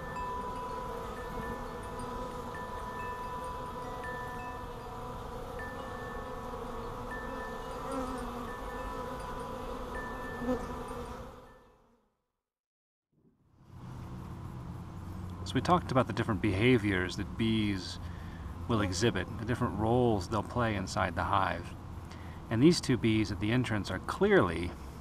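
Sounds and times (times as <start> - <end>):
wind chimes ringing: 0.0 - 11.2
honeybees buzzing: 0.0 - 12.0, 14.4 - 21.8.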